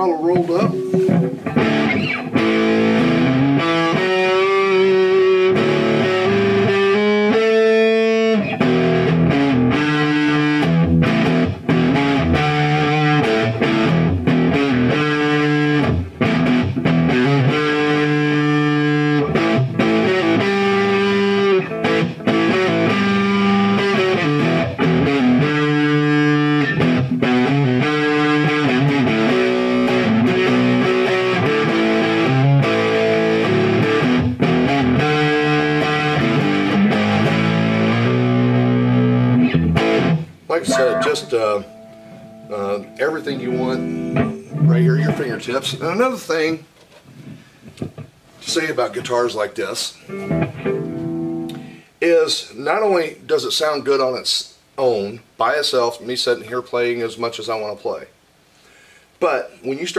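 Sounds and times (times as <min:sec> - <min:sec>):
distorted electric guitar: 0:00.0 - 0:45.6, 0:50.0 - 0:51.9.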